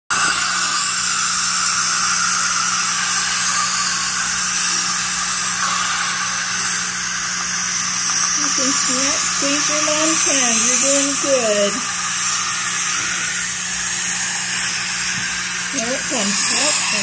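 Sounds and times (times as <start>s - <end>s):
dental suction hissing: 0.1s - 17.0s.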